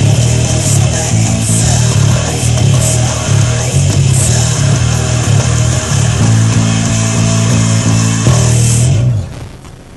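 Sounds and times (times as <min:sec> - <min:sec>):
electric bass played fingerstyle: 0:00.0 - 0:09.9
heavy rock recording: 0:00.0 - 0:09.9.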